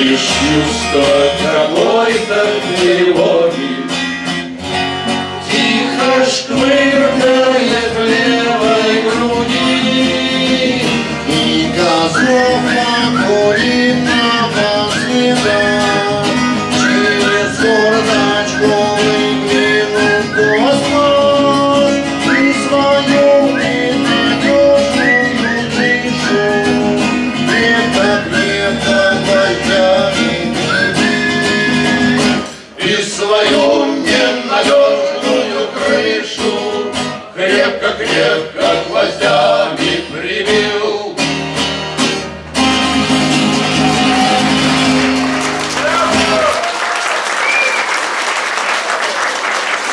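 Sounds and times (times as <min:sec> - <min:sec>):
acoustic guitars playing: 0:00.0 - 0:46.6.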